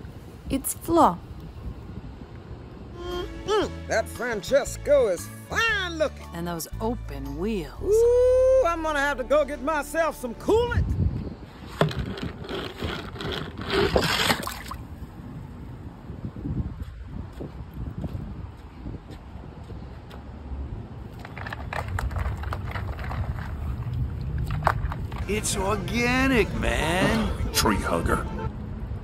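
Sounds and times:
toy car scraping and clicking: 11.7 - 14.5.

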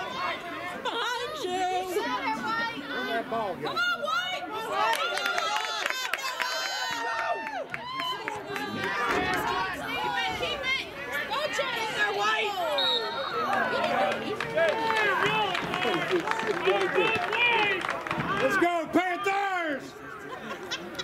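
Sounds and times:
crowd chatter and calling out: 0.0 - 21.0.

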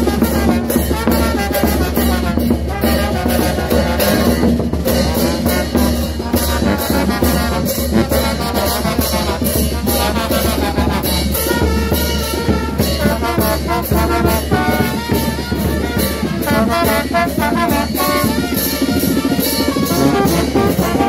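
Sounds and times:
drums and cymbals: 0.0 - 21.0
trumpets and trombones: 0.0 - 21.0.

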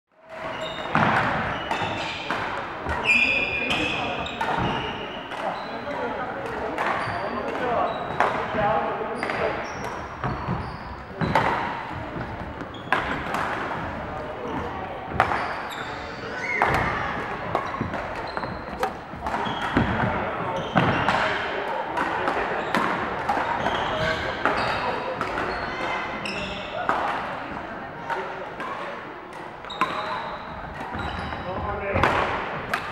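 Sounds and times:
players' voices: 0.3 - 32.9
badminton rackets striking shuttlecocks: 11.2 - 13.8, 32.0 - 32.9.

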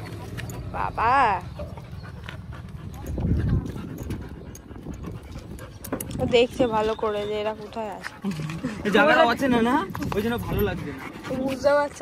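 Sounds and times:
harness buckle clicking and rattling: 2.9 - 6.5.

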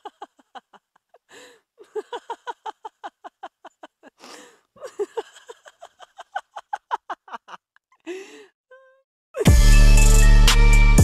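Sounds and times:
loud music with drum hit: 9.5 - 11.0.

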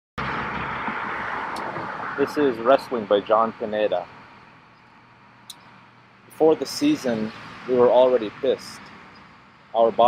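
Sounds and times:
road traffic noise: 0.2 - 10.0.

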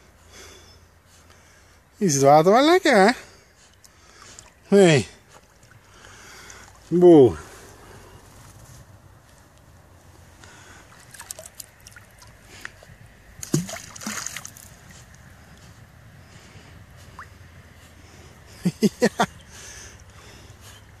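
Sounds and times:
lake water lapping: 2.9 - 8.4, 10.3 - 21.0
water splashing: 10.5 - 12.8, 13.4 - 15.3.

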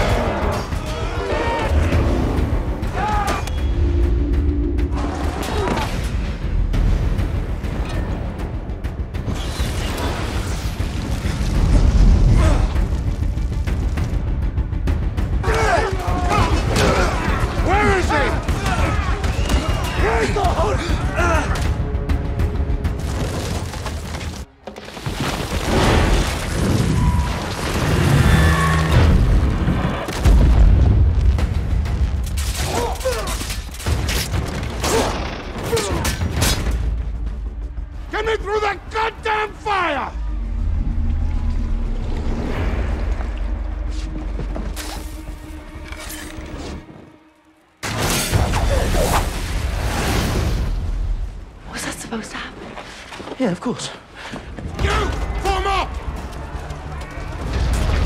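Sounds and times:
people shouting: 0.0 - 3.6, 15.3 - 21.9, 54.6 - 57.6
dramatic film score: 0.0 - 58.0.

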